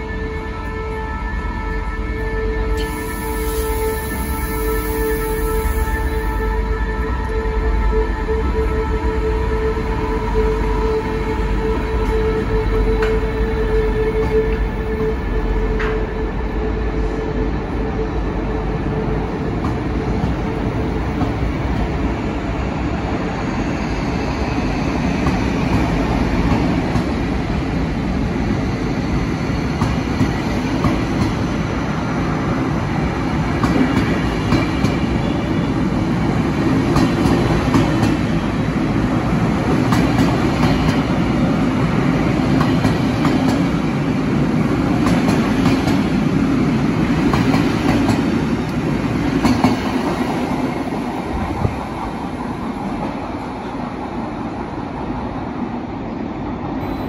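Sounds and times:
train rumbling: 0.0s - 57.0s.

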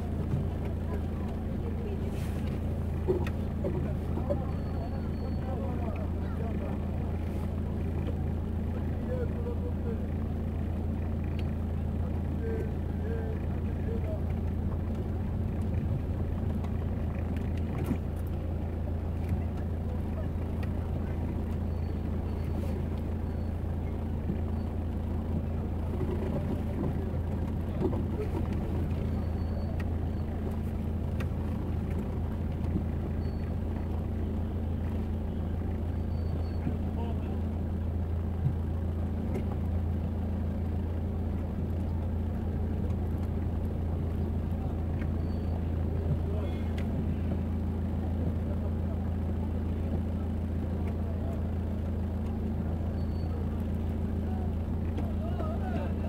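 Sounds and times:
car engine humming: 0.0s - 56.0s.

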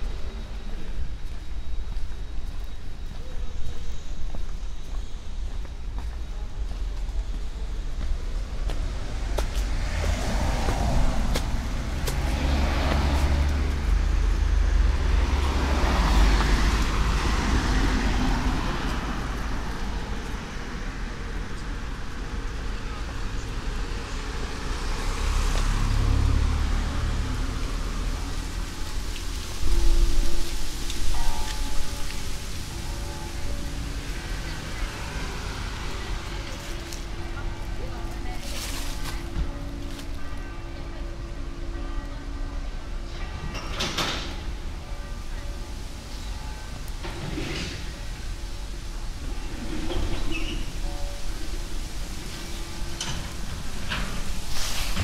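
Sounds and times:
city background noise: 0.0s - 55.0s
cars passing: 7.5s - 55.0s
faint voices: 31.0s - 43.5s.

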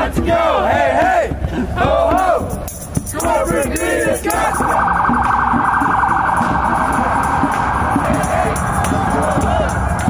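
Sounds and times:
electronic siren warbling: 4.3s - 9.3s.

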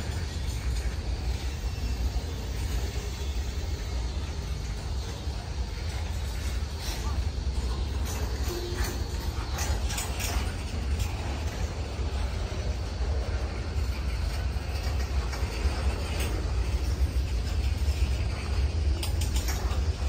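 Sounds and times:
rail cars clicking and rattling: 0.0s - 20.0s
train wheels rumbling on rail: 0.0s - 20.0s.

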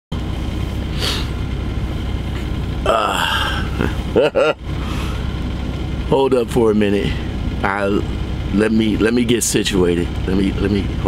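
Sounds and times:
steady low rumble: 0.1s - 11.0s
man groaning: 2.8s - 4.6s
man laughing: 2.9s - 4.7s.

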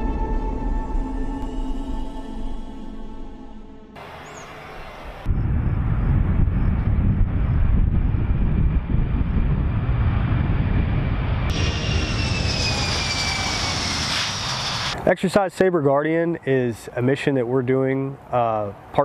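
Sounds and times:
high turbine whine: 0.0s - 15.5s
jet engines deep rumble: 4.0s - 15.7s.

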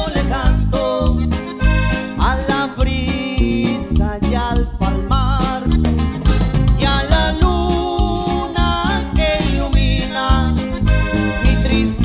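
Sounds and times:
man singing: 0.0s - 6.1s, 6.7s - 12.0s
accordion melody: 0.0s - 12.0s
acoustic guitar: 0.0s - 12.0s
drums keeping a beat: 0.0s - 12.0s
electric bass: 0.0s - 12.0s.

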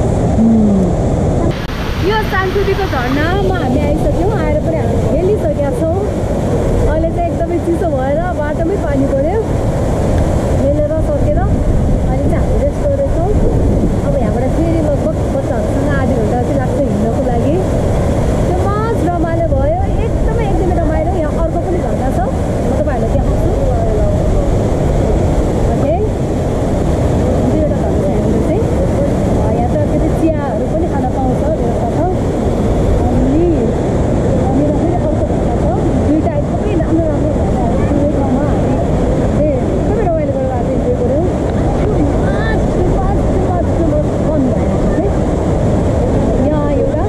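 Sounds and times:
waterfall roaring: 0.0s - 47.0s
woman talking: 2.0s - 6.1s, 6.8s - 9.5s, 10.6s - 13.4s, 14.0s - 17.7s, 18.5s - 24.5s, 25.7s - 26.1s, 27.4s - 32.2s, 33.0s - 33.8s, 34.4s - 45.2s, 46.2s - 47.0s.

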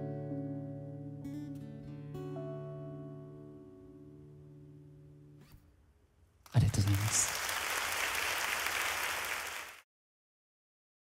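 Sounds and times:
acoustic guitar chord ringing: 0.0s - 5.4s
crowd applauding: 6.5s - 9.8s.

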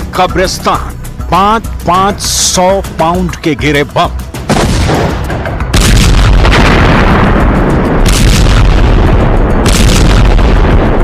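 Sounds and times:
bomb explosions: 4.5s - 11.0s
heavy rumble: 4.5s - 11.0s.

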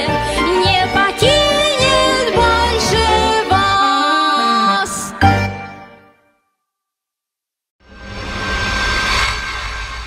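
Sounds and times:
low rumble: 7.8s - 10.0s
whoosh: 7.8s - 10.0s.

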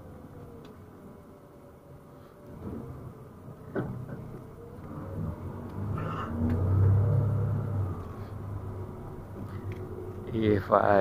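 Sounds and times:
bus engine rumble: 2.4s - 11.0s.

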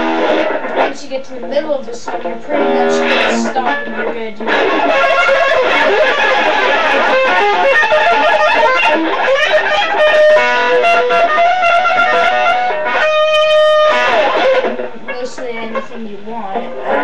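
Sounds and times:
electric guitar lead line: 0.0s - 17.0s.

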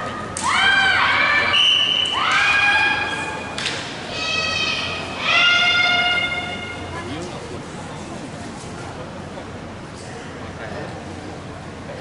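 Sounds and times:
long high-pitched shout: 4.1s - 6.7s.

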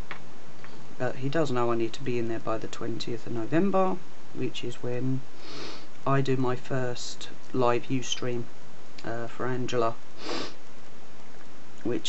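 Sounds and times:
sniff through the nose: 5.4s - 5.9s, 10.2s - 10.6s.

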